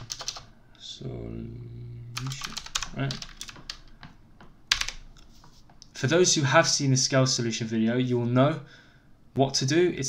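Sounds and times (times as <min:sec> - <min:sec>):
computer keyboard typing: 0:00.0 - 0:00.5, 0:02.2 - 0:05.2.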